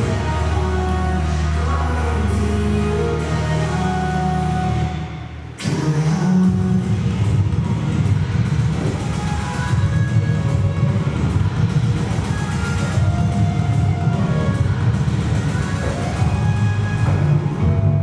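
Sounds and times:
bass-heavy dance music: 0.0s - 18.0s.

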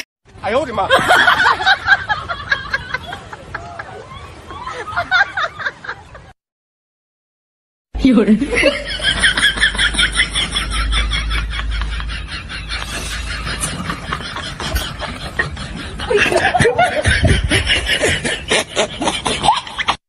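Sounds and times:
people snickering and chuckling: 8.5s - 20.0s.

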